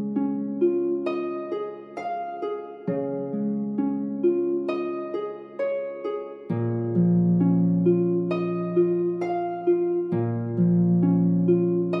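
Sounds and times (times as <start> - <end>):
slow plucked harp music: 0.0 - 12.0.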